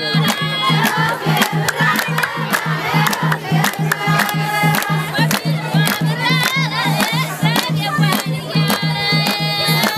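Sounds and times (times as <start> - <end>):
wedding music with drum beat: 0.0 - 9.9
sharp claps: 0.1 - 9.9.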